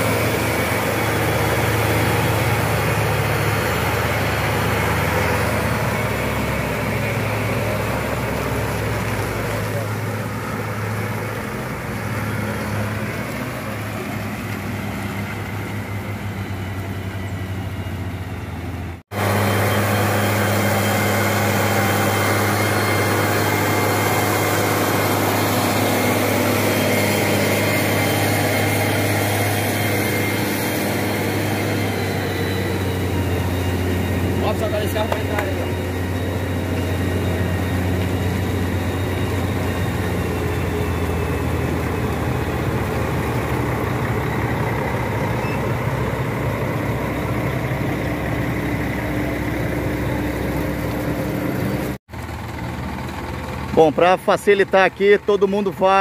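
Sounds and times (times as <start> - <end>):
bus diesel engine idling: 0.0 - 56.0
heavy diesel engines running: 0.0 - 56.0.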